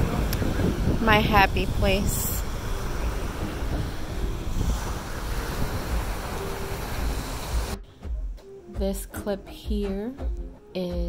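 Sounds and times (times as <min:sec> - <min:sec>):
ocean surf washing on beach: 0:00.0 - 0:07.8
wind rumble on microphone: 0:00.0 - 0:07.8.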